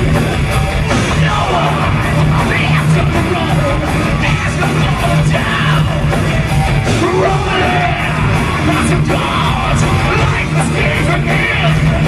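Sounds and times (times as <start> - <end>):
bass and drums: 0.0 - 12.0
distorted electric guitars: 0.0 - 12.0
singer yelling: 1.0 - 6.1, 6.8 - 12.0.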